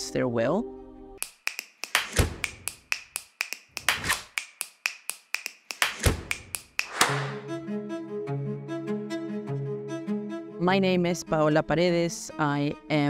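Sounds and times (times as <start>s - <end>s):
sharp clicks: 1.2s - 7.4s.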